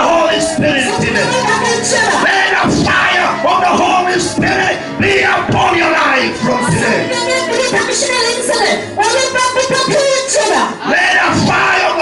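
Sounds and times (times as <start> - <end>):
man shouting through loudspeakers: 0.0 - 7.1, 10.8 - 12.0
crowd of voices: 0.0 - 12.0.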